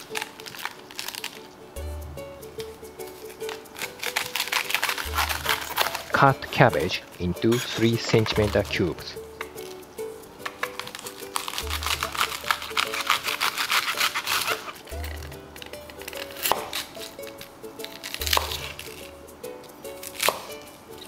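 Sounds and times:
background music: 0.0s - 21.0s
knife cutting cabbage on board: 3.0s - 6.8s, 7.4s - 9.8s, 10.4s - 19.1s, 20.0s - 21.0s.

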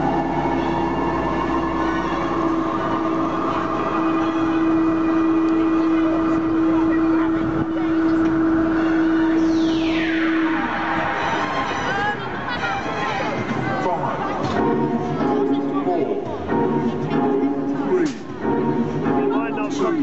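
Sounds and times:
high whistle falling in pitch: 0.0s - 12.6s
lift drive humming: 0.0s - 19.8s.

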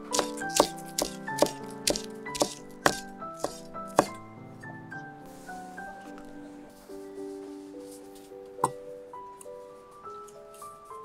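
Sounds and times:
background music with piano notes: 0.0s - 11.0s
knife chopping on wooden board: 0.1s - 4.2s.

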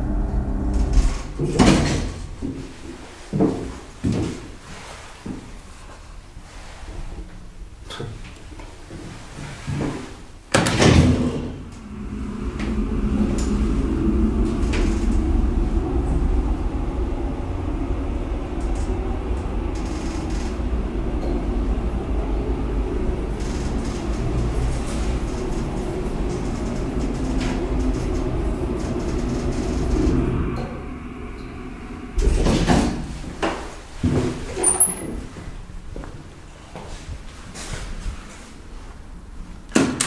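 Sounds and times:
freight elevator rumbling and humming: 0.0s - 4.6s, 6.0s - 39.6s.

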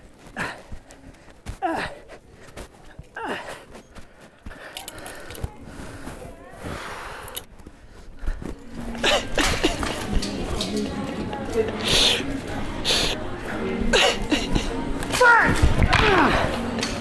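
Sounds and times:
clothes and hangers rustling: 0.0s - 17.0s.

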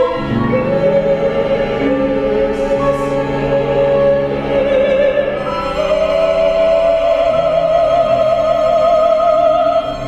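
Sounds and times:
strings and voices sustained chord: 0.0s - 10.0s.

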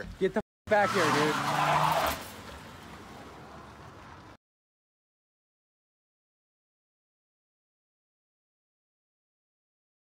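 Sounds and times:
car pulling away: 0.9s - 4.4s.

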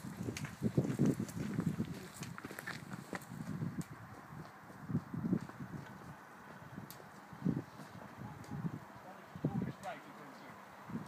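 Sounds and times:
footsteps on a dirt track: 0.0s - 8.2s.

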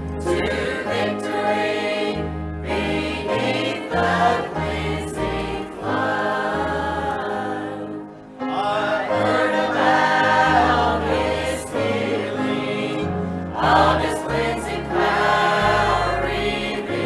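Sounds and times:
choir singing: 0.0s - 17.0s.

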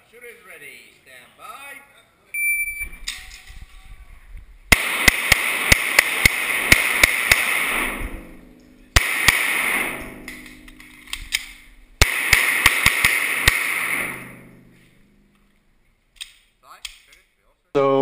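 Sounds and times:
shot timer beep: 2.4s - 3.0s
pistol shots ringing indoors: 4.7s - 14.7s.

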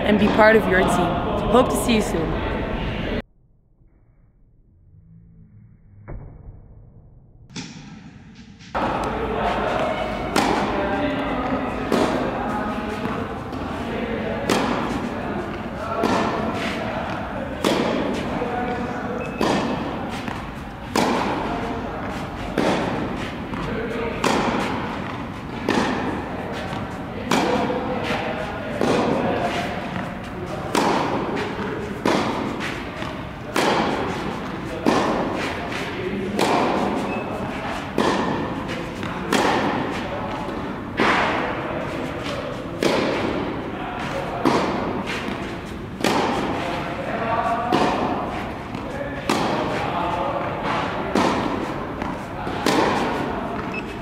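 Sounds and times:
tennis racket hitting ball: 7.5s - 54.0s.

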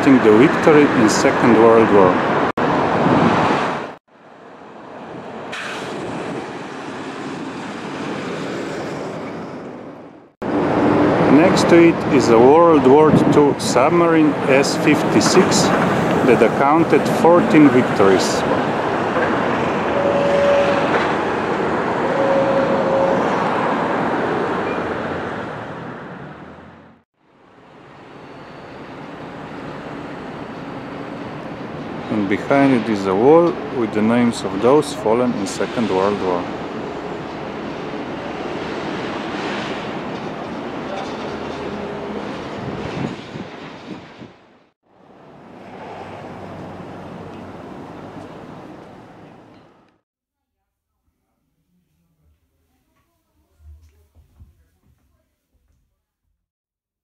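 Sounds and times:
traffic: 0.0s - 50.0s
wind on microphone: 2.6s - 3.9s, 41.7s - 44.4s
short steady tones: 19.9s - 21.0s, 22.0s - 23.4s.

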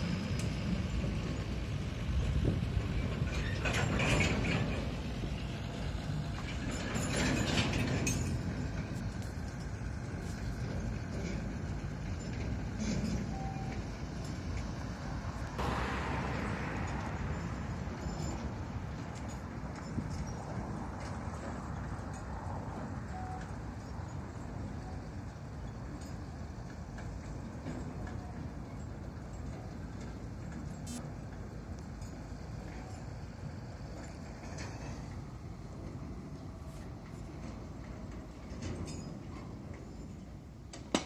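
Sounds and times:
tractor engine rumble: 0.0s - 41.0s
wagons clanking and rattling: 0.0s - 41.0s
wheels clacking on rails: 0.0s - 41.0s.

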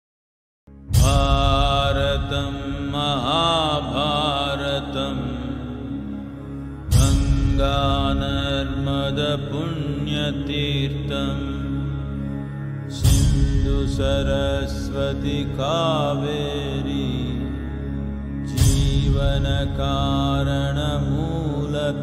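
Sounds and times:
steady low drone: 0.7s - 22.0s.

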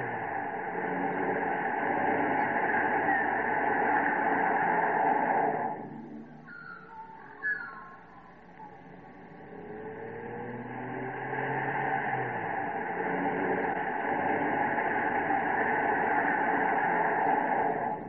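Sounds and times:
car approaching: 0.0s - 18.0s
car engine and tyre noise: 0.0s - 18.0s.

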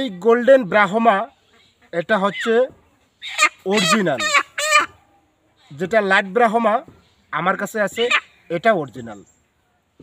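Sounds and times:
hen calling: 0.8s - 9.3s.

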